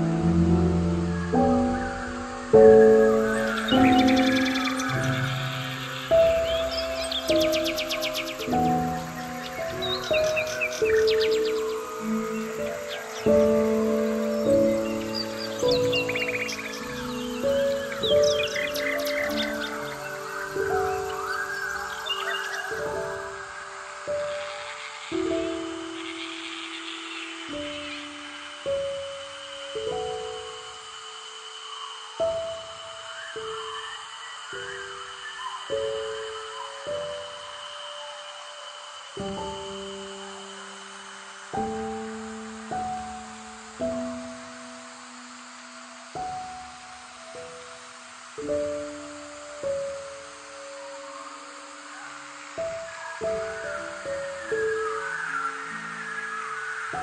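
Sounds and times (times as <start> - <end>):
slow gentle keyboard music: 0.0 - 57.0
songbirds chirping: 0.0 - 57.0.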